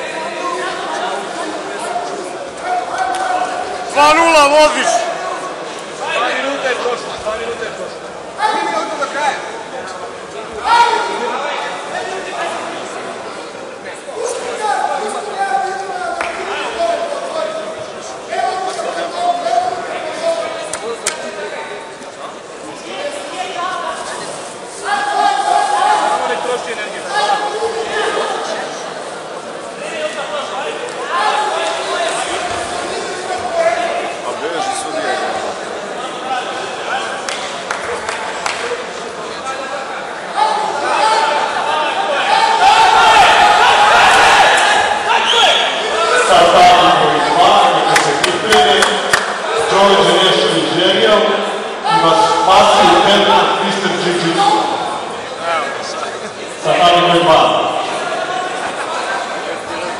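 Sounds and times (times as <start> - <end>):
people calling out in echoing hall: 0.0 - 7.2, 8.0 - 59.9.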